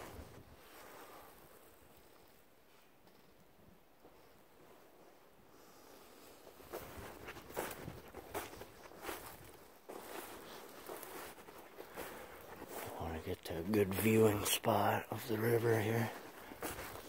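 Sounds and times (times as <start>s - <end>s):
footsteps in snow: 4.0s - 17.0s.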